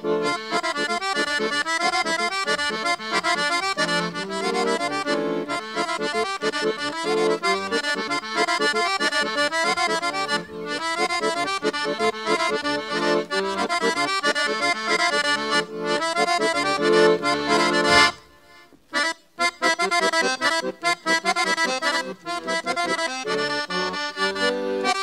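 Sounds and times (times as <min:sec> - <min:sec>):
accordion dance tune: 0:00.0 - 0:25.0.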